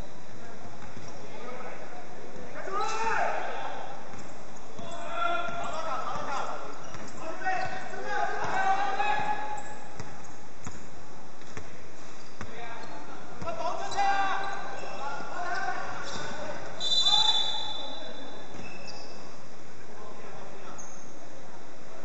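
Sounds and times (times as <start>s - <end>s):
players calling out: 2.5s - 10.2s, 12.4s - 19.1s.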